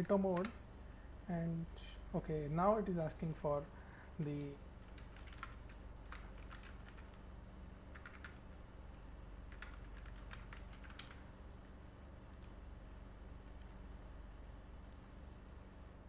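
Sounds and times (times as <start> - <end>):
computer keyboard typing: 0.0 - 0.6, 4.8 - 7.2, 7.9 - 8.4, 9.5 - 11.2
low steady hum: 0.0 - 16.0.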